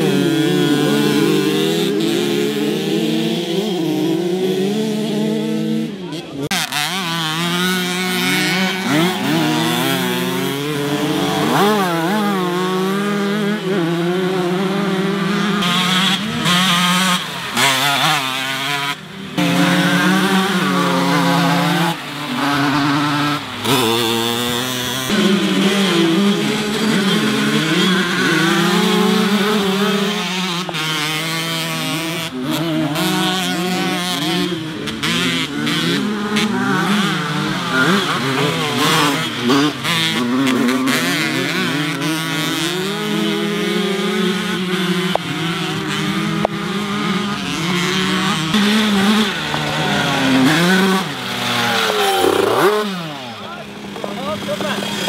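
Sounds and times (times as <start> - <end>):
moped engines buzzing and revving: 0.0 - 55.0.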